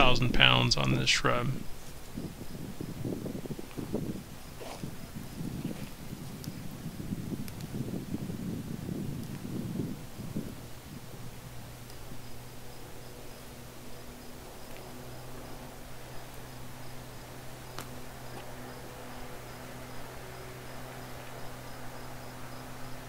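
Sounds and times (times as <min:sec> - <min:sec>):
branches rustling: 0:10.0 - 0:23.0.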